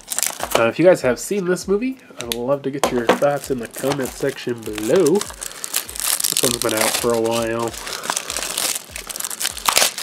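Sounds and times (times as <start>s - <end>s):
plastic shrink wrap crinkling: 0.0s - 0.9s, 2.3s - 10.0s.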